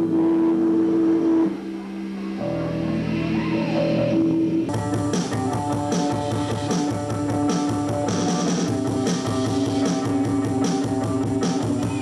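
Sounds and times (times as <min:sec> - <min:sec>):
rock band droning notes: 0:00.0 - 0:12.0.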